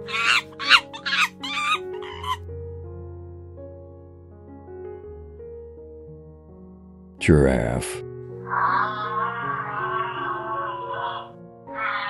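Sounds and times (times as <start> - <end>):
chattering animal calls: 0.0 - 2.4, 8.5 - 12.0
soft background music: 0.0 - 12.0.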